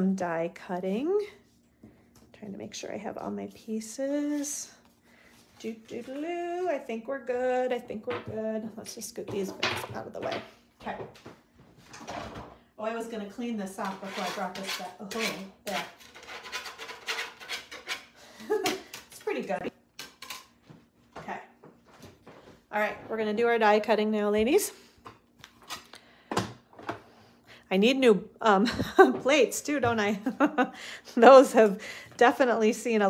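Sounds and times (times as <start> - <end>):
woman speaking: 0.0 - 1.4, 2.4 - 4.9, 5.6 - 11.2, 12.8 - 16.0, 18.5 - 19.7, 21.2 - 21.6, 22.7 - 24.8, 27.7 - 33.0.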